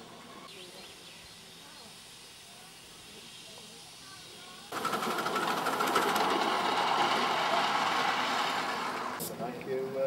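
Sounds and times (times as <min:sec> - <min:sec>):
loud mechanical clatter: 0:04.7 - 0:09.2.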